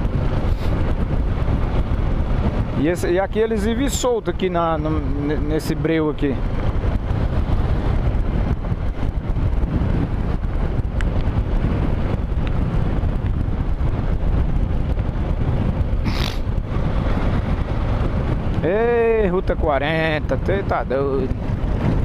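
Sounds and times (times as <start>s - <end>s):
motorcycle engine rumble: 0.0s - 22.0s
wind: 0.0s - 22.0s.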